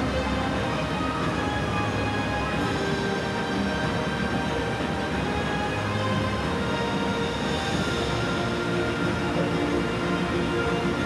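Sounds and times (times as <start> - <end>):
low hum of open-air ambience: 0.0 - 11.0
music with long held notes: 0.0 - 11.0.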